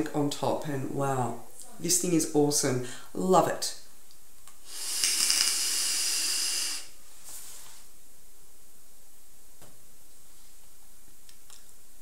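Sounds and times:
faint breath hiss: 1.4s - 12.0s
vape hissing: 4.6s - 7.0s.

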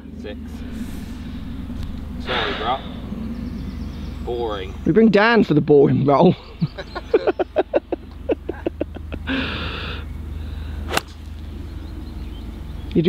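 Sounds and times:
wind on microphone: 0.0s - 4.8s
people laughing: 6.3s - 9.8s
golf club striking ball: 10.8s - 11.8s.

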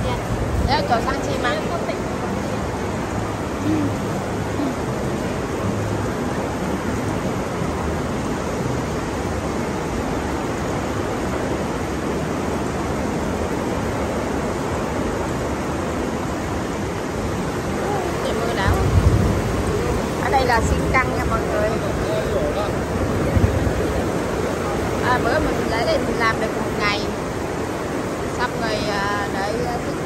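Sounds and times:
faint voices: 0.0s - 6.3s, 17.5s - 27.5s.

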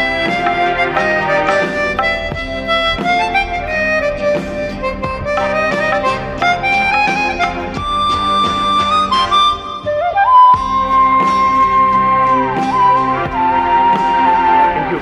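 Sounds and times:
guitar: 0.0s - 15.0s
harmonica melody: 0.0s - 15.0s
keyboard: 0.0s - 15.0s.

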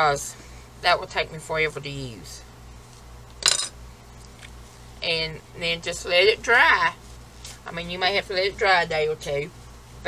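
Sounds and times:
metal knife clinking down: 3.4s - 3.8s.

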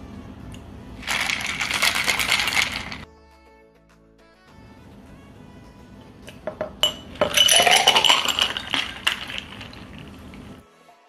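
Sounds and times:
ice rattling in cocktail shaker: 1.0s - 3.1s, 6.8s - 10.6s
liquid pouring over ice: 7.1s - 10.6s.

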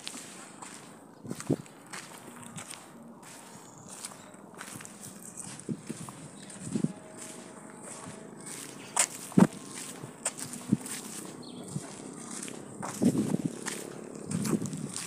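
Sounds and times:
footsteps walking: 0.0s - 15.0s.

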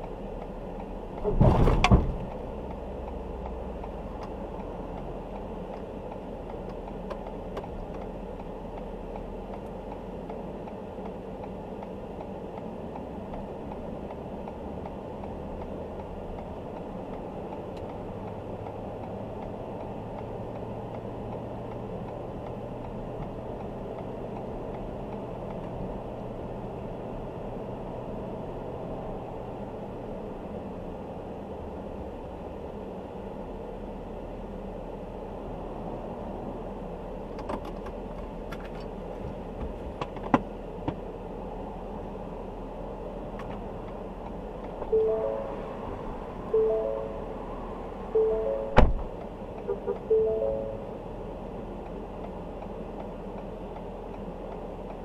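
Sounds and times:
road noise: 0.0s - 55.0s
truck engine drone: 41.2s - 55.0s.

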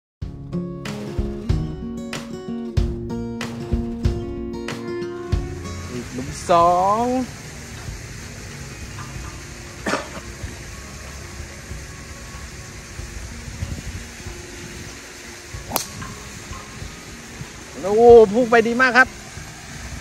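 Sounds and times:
golf club striking ball: 15.6s - 17.1s.

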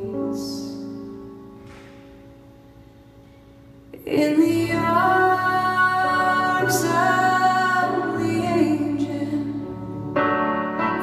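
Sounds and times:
grand piano chords: 0.0s - 11.0s.

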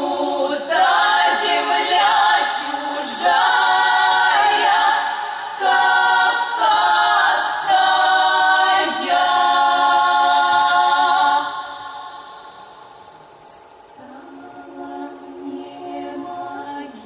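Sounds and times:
women singing a cappella: 0.0s - 17.0s.

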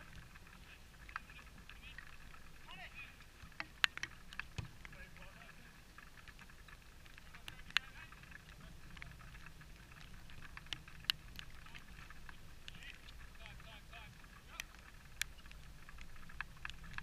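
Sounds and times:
low steady rumble: 0.0s - 17.0s.

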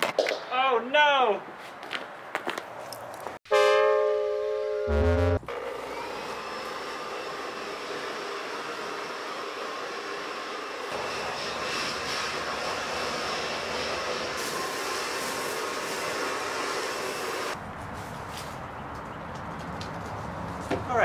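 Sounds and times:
leaf blower motor whine: 4.9s - 15.8s.

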